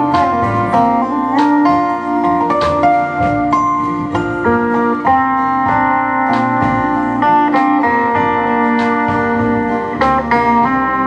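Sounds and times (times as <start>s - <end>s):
acoustic guitar: 0.0s - 11.0s
double bass: 0.0s - 11.0s
drums: 0.0s - 11.0s
fiddle: 0.0s - 11.0s
lap steel guitar sliding notes: 0.0s - 11.0s.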